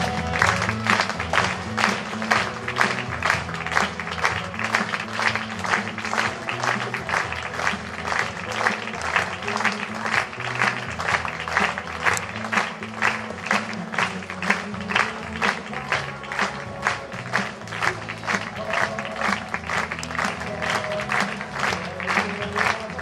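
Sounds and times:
audience clapping in unison: 0.0s - 23.0s
music with bass line: 0.0s - 23.0s.

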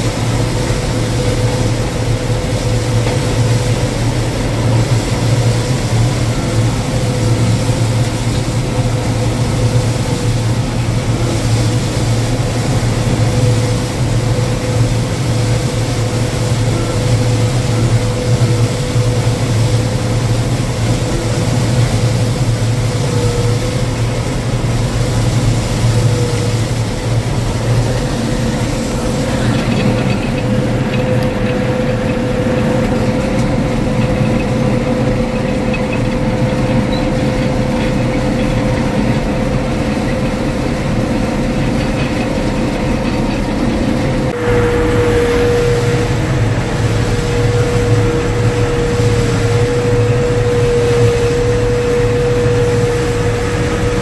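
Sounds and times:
combine harvester drone: 0.0s - 54.0s
thin constant whine: 0.0s - 54.0s.

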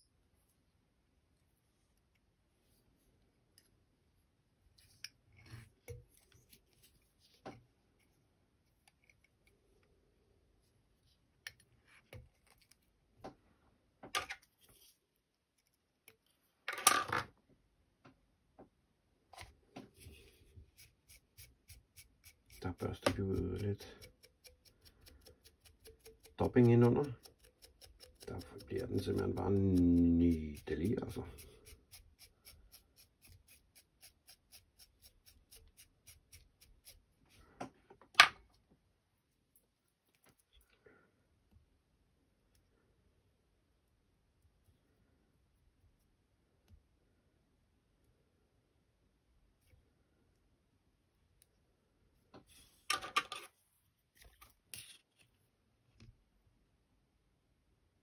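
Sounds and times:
scrape: 4.8s - 8.2s, 14.6s - 15.0s, 19.4s - 37.6s, 52.4s - 55.4s.

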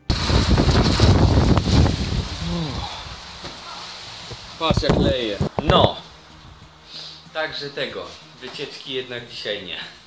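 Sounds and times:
heavy rain pouring: 0.0s - 5.6s.

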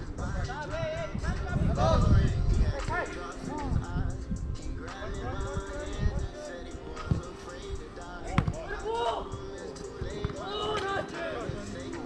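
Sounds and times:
players calling out: 8.1s - 12.0s
soccer ball kicked: 8.3s - 9.2s, 10.0s - 11.6s.

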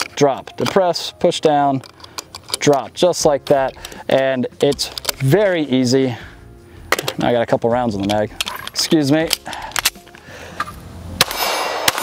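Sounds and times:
pistol shots: 11.2s - 12.0s.

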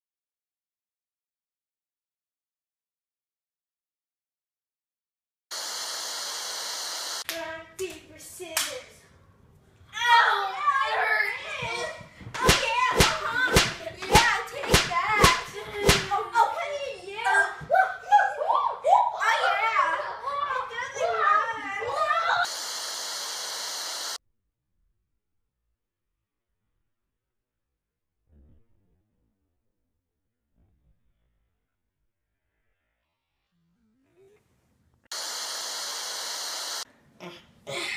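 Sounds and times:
hand clap: 7.2s - 8.0s, 8.6s - 8.8s, 12.4s - 16.2s
child's voice: 7.3s - 9.0s, 10.0s - 22.5s
television static hiss: 22.5s - 24.2s, 35.2s - 36.8s.

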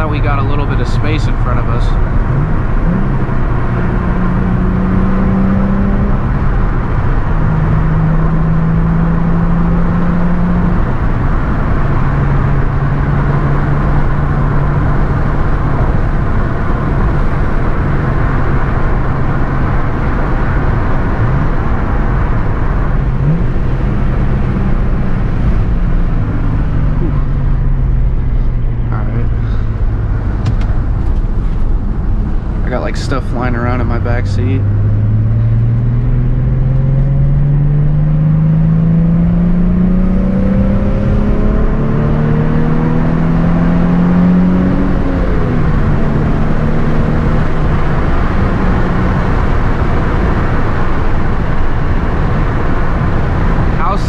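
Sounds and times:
car engine drone from inside: 0.0s - 54.0s
road and tyre noise: 0.0s - 54.0s.

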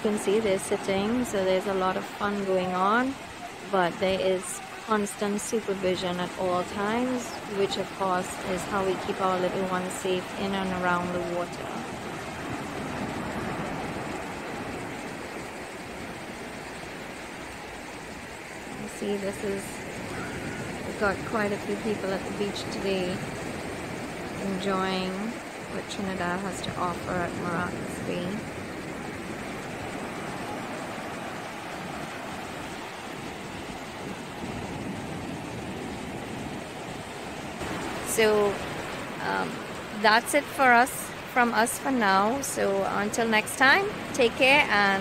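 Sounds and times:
ocean surf on sandy beach: 0.0s - 45.0s.

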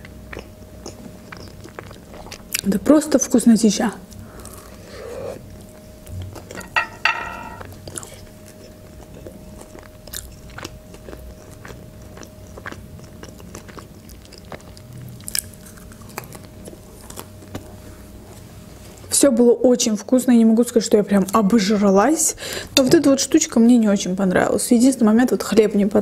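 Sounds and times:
chewing soft bun: 0.0s - 3.4s, 7.7s - 19.1s.

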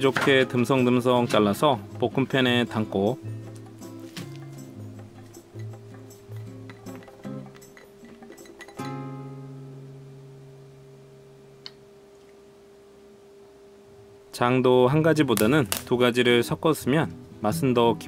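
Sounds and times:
acoustic guitar chords: 0.0s - 11.4s, 17.1s - 18.0s.

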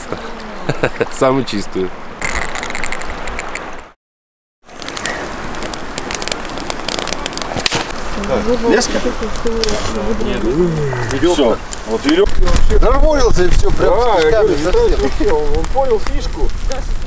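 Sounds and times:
campfire crackling: 0.0s - 3.9s, 4.6s - 17.0s
voices talking: 8.1s - 17.0s.

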